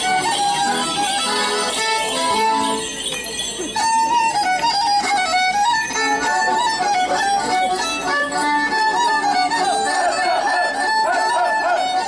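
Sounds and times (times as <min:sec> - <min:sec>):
fast fiddle dance melody: 0:00.0 - 0:12.0.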